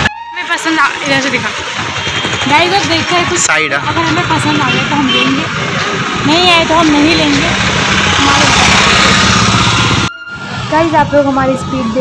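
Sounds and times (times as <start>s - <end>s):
three-wheeler engine passing: 0.9s - 12.0s.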